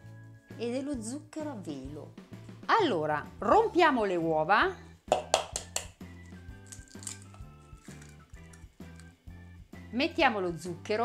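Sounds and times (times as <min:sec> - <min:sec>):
background music with bass line: 0:01.9 - 0:11.0
eggs cracked into plastic bowl: 0:05.1 - 0:09.1.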